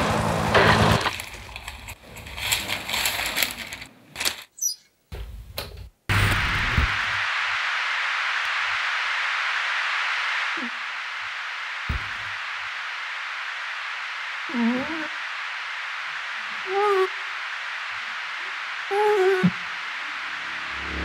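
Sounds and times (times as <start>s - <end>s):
static hiss: 0.0s - 4.6s, 6.1s - 21.0s.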